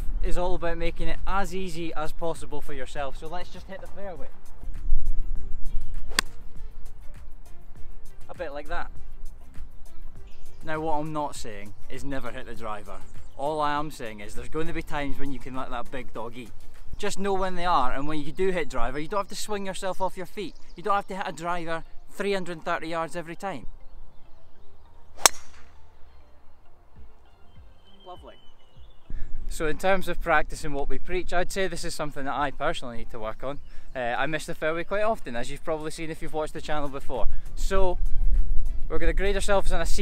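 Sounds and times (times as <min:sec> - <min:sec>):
background music with steady beat: 0:03.2 - 0:13.4, 0:24.9 - 0:29.5
golf club striking ball: 0:06.1 - 0:06.5, 0:25.2 - 0:26.0.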